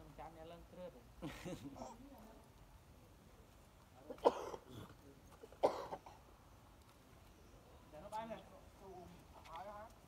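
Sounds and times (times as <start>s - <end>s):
short coughs: 4.1s - 4.9s, 5.6s - 6.2s.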